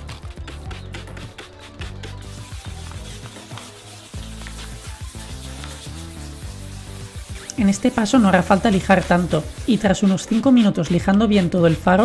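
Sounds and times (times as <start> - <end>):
background music: 0.0 - 12.0
wet sandpaper rubbing: 0.0 - 12.0
spray bottle spraying: 0.2 - 12.0.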